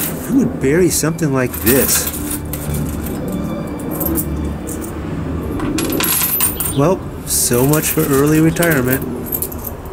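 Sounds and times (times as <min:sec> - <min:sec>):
coins clinking onto a pile: 0:00.0 - 0:00.3, 0:01.5 - 0:04.9, 0:05.7 - 0:06.8, 0:07.6 - 0:09.8.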